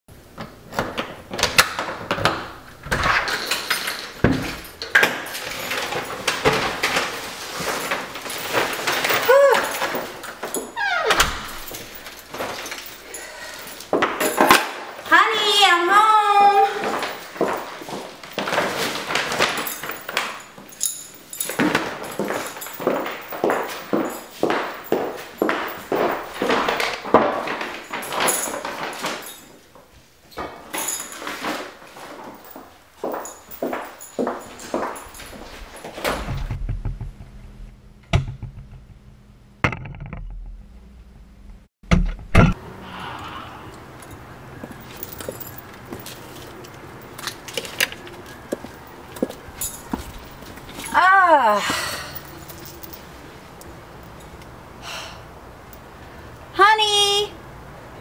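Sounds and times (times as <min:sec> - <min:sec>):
shopping bags rustling: 0:00.9 - 0:10.8, 0:11.4 - 0:36.3, 0:44.1 - 0:54.3
keys jangling in a door lock: 0:02.8 - 0:14.8, 0:16.8 - 0:29.7, 0:30.3 - 0:36.3, 0:44.0 - 0:51.2, 0:52.0 - 0:54.4
high heels walking on tile: 0:16.5 - 0:18.7, 0:21.4 - 0:27.6, 0:32.0 - 0:36.4, 0:44.6 - 0:51.0
door pushed open with a knock: 0:36.0 - 0:37.4.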